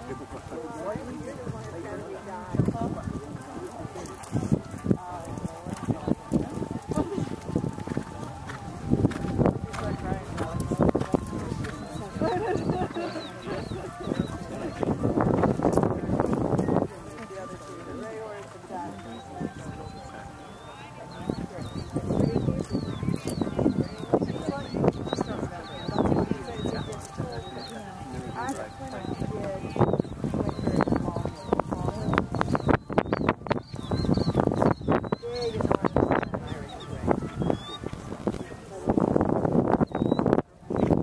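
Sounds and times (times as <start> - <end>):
indistinct voices talking: 0.0 - 41.0
bird chirping: 11.2 - 15.5, 18.9 - 38.4, 39.8 - 40.9.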